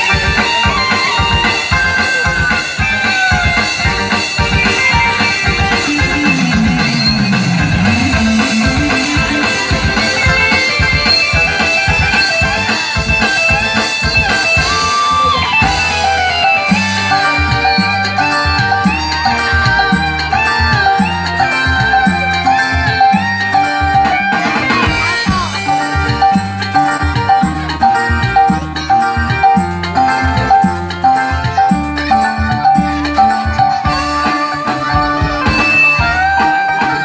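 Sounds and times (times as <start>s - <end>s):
electronic keyboard music: 0.0s - 37.0s.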